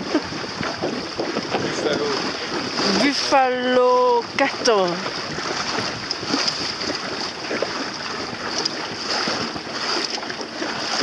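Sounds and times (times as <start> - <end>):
choppy sea water: 0.0 - 11.0
wind buffeting microphone: 0.0 - 11.0.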